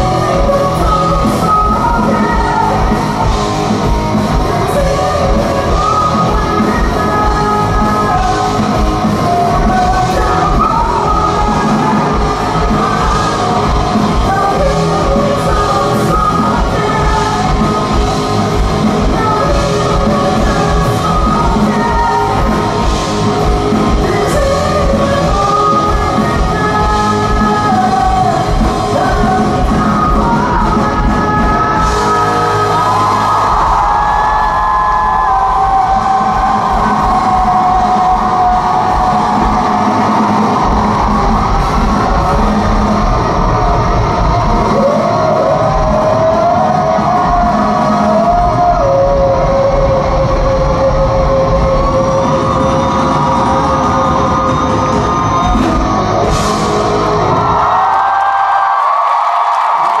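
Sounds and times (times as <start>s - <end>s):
live rock band playing: 0.0s - 60.0s.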